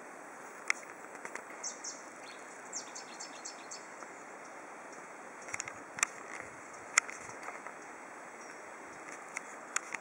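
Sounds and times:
background hiss: 0:00.0 - 0:10.0
small birds chirping: 0:01.5 - 0:05.7, 0:07.6 - 0:09.1.

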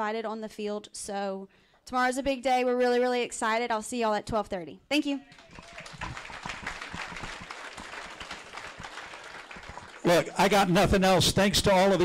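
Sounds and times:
audience applauding: 0:05.3 - 0:10.7.

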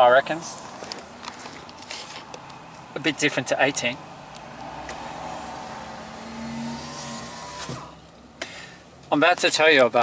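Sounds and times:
vehicle passing: 0:00.1 - 0:08.4.

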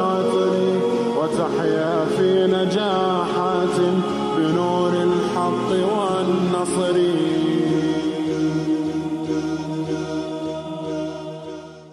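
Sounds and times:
layered voices holding long notes: 0:00.0 - 0:11.9.

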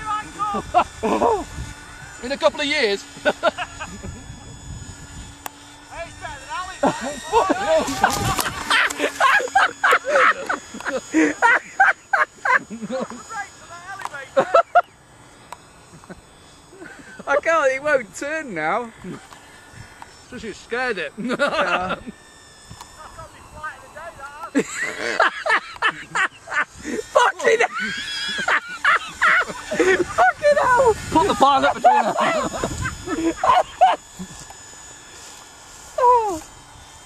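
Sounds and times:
wind rumble on microphone: 0:00.0 - 0:02.2, 0:03.7 - 0:05.4, 0:07.3 - 0:08.7, 0:29.9 - 0:33.4
model plane motors whining: 0:00.0 - 0:37.0.

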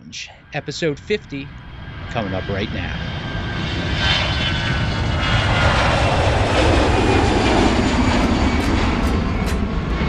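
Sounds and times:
airplane engine rush: 0:00.0 - 0:10.0.

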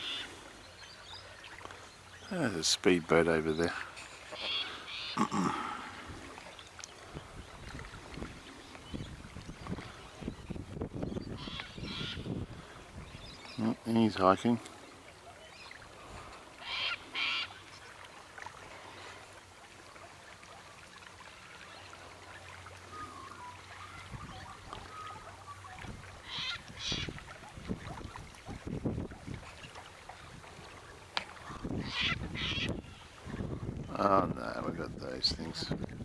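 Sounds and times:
wind buffeting microphone: 0:07.0 - 0:13.5, 0:24.0 - 0:25.0, 0:25.7 - 0:30.8, 0:31.4 - 0:36.0.

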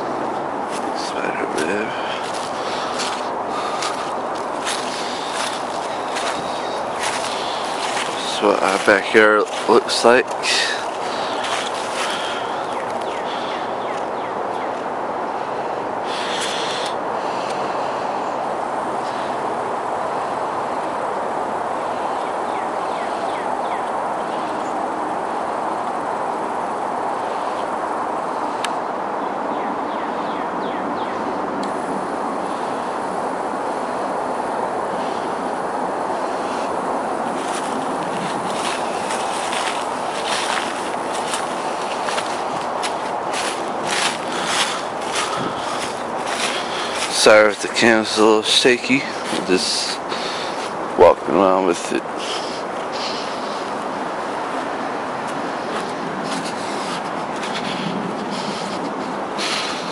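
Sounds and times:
outdoor background noise: 0:00.0 - 0:59.9.

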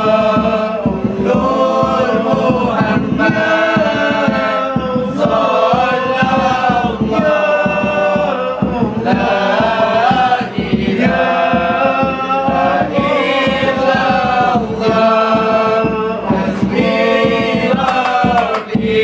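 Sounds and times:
frame drums beating: 0:00.0 - 0:19.0
male group chanting in unison: 0:00.0 - 0:19.0.

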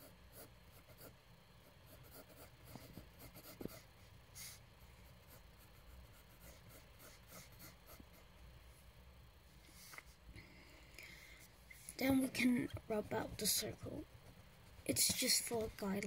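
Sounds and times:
pencil scratching on paper: 0:00.0 - 0:08.3, 0:12.9 - 0:15.9.

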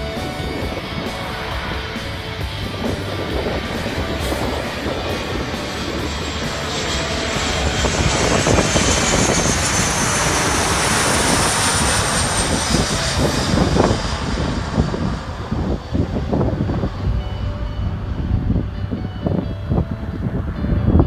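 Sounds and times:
high jet whine: 0:00.0 - 0:21.0
jet engines rumbling overhead: 0:00.0 - 0:21.0.

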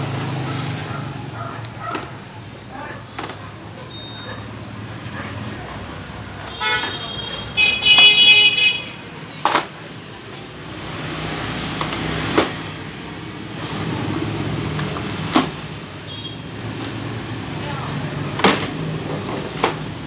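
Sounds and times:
street traffic: 0:00.0 - 0:20.0
vehicle horn: 0:06.5 - 0:09.1, 0:16.1 - 0:16.5
plastic stools stacking knocks: 0:09.4 - 0:09.8, 0:11.7 - 0:12.7, 0:14.7 - 0:15.6, 0:18.3 - 0:20.0.

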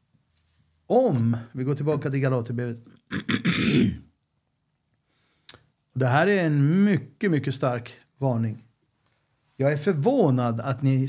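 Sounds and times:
man clearing his throat: 0:03.1 - 0:04.1.

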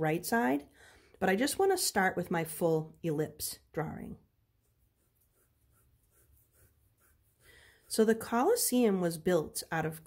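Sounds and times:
pencil sketching on paper: 0:04.4 - 0:08.9.

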